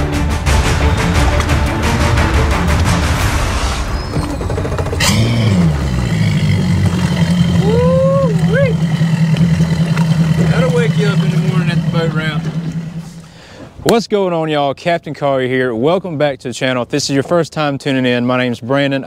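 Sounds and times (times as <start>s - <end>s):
intro music with a beat: 0.0s - 4.3s
outboard engine humming: 0.0s - 14.0s.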